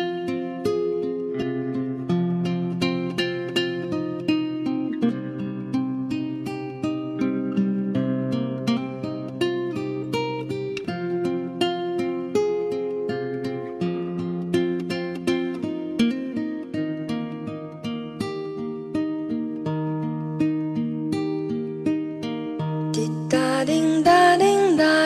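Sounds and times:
plucked string instrument music: 0:00.0 - 0:25.0.

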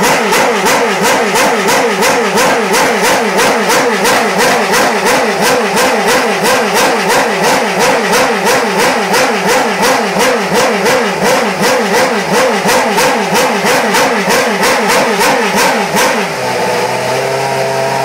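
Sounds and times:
racing car engine revving and idling: 0:00.0 - 0:18.0.

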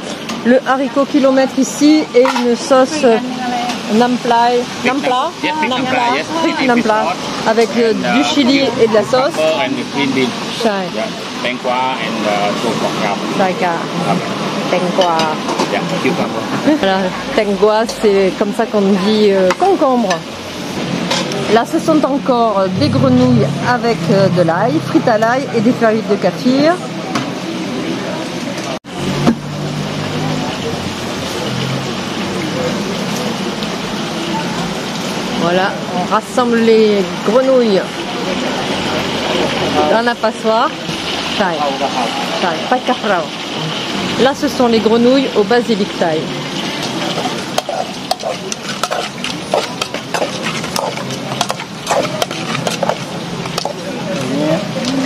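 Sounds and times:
frog legs sizzling in a wok: 0:00.0 - 0:22.8, 0:28.4 - 0:55.0
steel bowls and utensils clinking: 0:01.9 - 0:04.3, 0:14.8 - 0:16.3, 0:17.6 - 0:26.7, 0:45.1 - 0:55.0.

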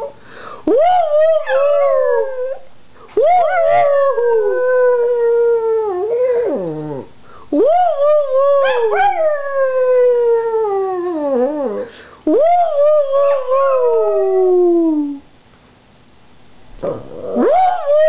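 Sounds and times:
dog howling: 0:00.8 - 0:07.1, 0:07.9 - 0:11.9.

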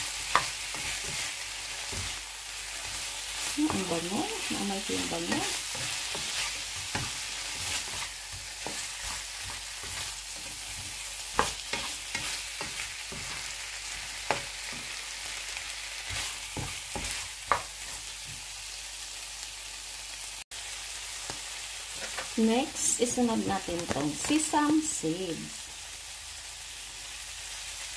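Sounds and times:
shrimp sizzling in a frying pan: 0:00.0 - 0:27.9
spatula scraping and knocking pan: 0:00.2 - 0:15.1, 0:16.0 - 0:18.4, 0:21.9 - 0:22.4.

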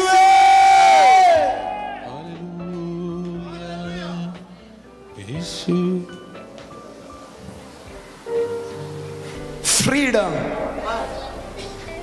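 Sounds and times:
man shouting through microphone: 0:00.0 - 0:02.1.

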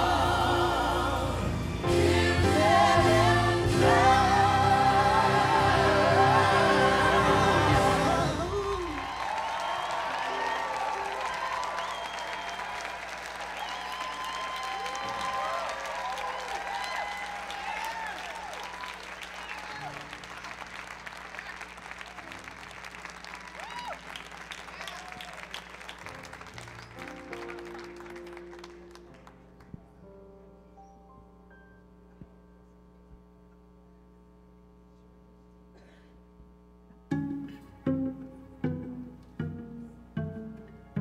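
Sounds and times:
vocal group singing chord: 0:00.0 - 0:09.0
audience applauding and cheering: 0:01.6 - 0:29.9
whoops and shouts: 0:08.3 - 0:12.8, 0:13.6 - 0:20.0, 0:23.6 - 0:24.1, 0:24.8 - 0:25.4.

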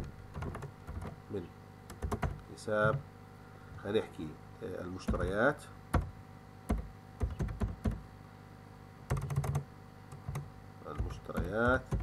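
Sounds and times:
computer keyboard typing: 0:00.3 - 0:01.2, 0:01.9 - 0:03.0, 0:05.1 - 0:06.1, 0:06.7 - 0:08.0, 0:09.1 - 0:12.0.

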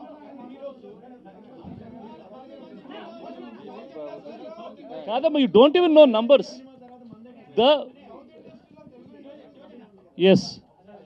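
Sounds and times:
off-microphone voices talking: 0:00.0 - 0:11.0.

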